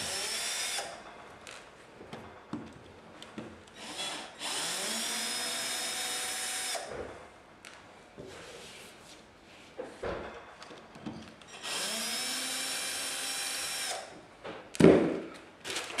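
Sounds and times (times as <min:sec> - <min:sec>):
cordless drill driving screws: 0:03.8 - 0:06.9, 0:11.5 - 0:14.1.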